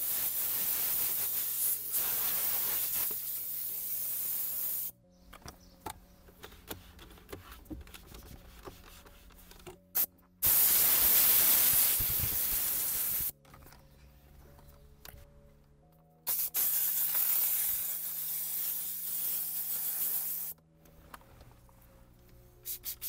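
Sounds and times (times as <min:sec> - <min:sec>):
steam cleaner nozzle hissing: 0:00.0 - 0:04.9, 0:10.4 - 0:13.3, 0:16.3 - 0:20.6.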